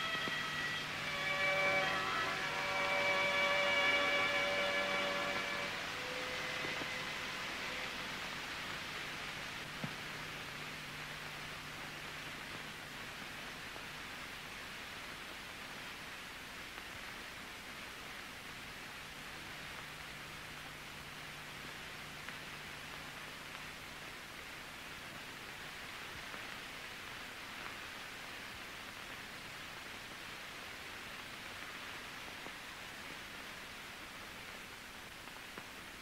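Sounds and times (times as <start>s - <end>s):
soft background music: 0.0s - 13.9s
soundtrack hiss and hum: 0.0s - 36.0s.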